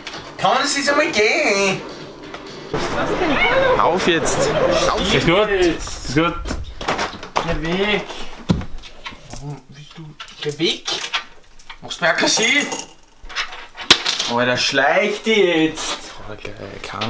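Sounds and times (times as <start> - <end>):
small objects clinking on desk: 11.6 - 14.4.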